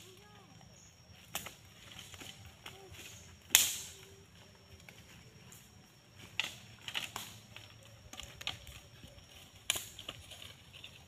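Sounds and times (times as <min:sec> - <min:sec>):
sharp crack: 0:03.4 - 0:04.0.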